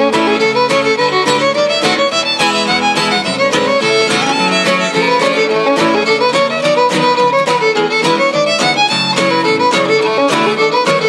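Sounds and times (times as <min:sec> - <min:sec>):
acoustic guitars strumming: 0:00.0 - 0:11.0
fiddle playing quick notes: 0:00.0 - 0:11.0.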